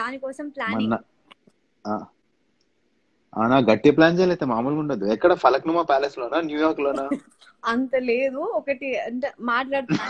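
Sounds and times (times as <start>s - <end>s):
person voicing short aa: 0.7s - 1.0s, 3.4s - 7.2s.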